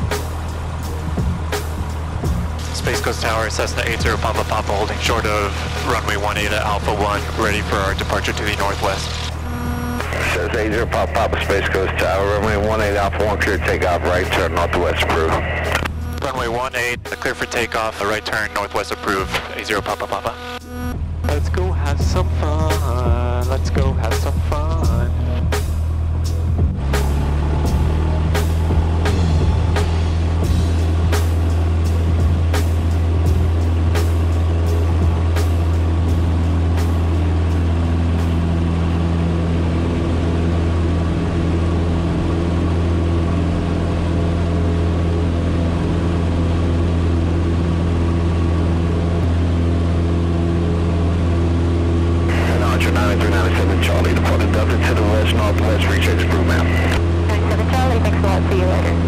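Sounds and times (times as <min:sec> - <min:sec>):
light aircraft engine droning: 0:00.0 - 0:59.0.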